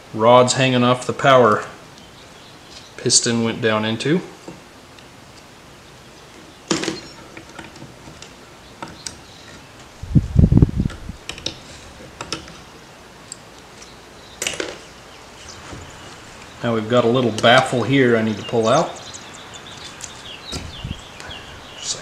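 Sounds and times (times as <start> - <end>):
dull low thump: 20.5 - 21.0.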